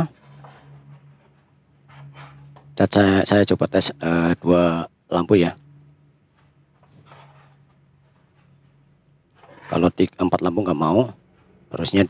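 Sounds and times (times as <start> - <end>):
low steady hum: 0.0 - 12.0
soft handling rustle: 6.3 - 10.0.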